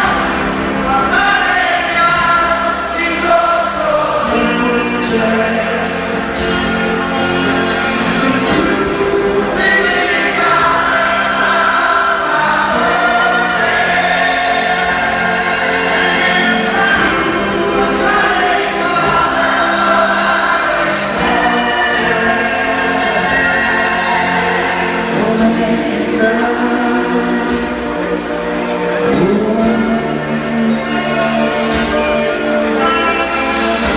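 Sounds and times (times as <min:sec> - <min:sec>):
live band playing: 0:00.0 - 0:33.9
voices singing held notes: 0:00.0 - 0:33.9.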